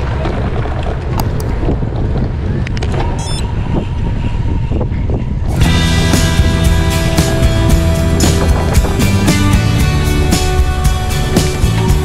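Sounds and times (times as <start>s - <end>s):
bicycle tyre and road noise: 0.0s - 12.0s
wind buffeting microphone: 0.0s - 12.0s
music: 5.5s - 12.0s.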